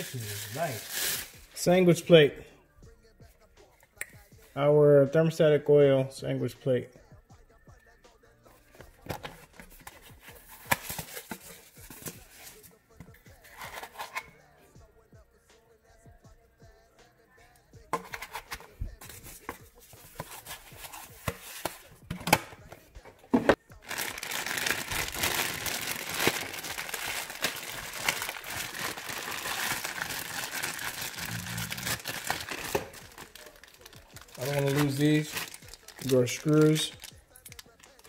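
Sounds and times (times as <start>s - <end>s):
plastic bag crinkling: 0.0s - 1.5s, 23.8s - 38.0s
plastic bag clicks and rustles: 23.9s - 38.0s.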